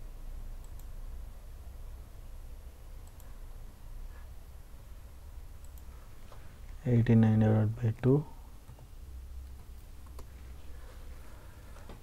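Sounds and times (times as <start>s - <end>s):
low background hum: 0.0s - 12.0s
computer mouse clicks: 0.6s - 1.0s, 3.0s - 3.4s, 5.6s - 6.4s, 9.5s - 10.4s.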